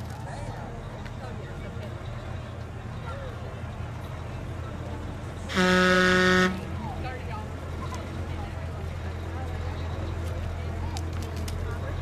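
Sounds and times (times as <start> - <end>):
vehicle horn blast: 5.5 - 6.7.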